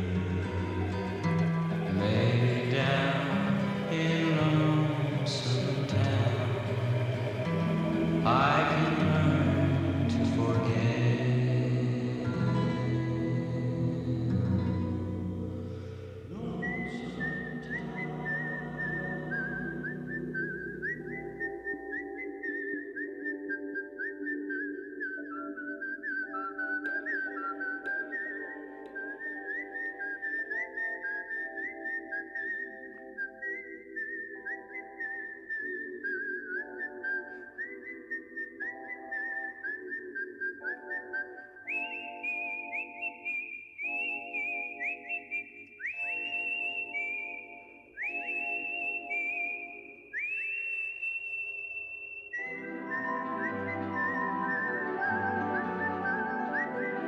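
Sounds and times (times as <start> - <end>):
plucked chord accompaniment: 0.0 - 20.4
whistled melody: 0.0 - 57.0.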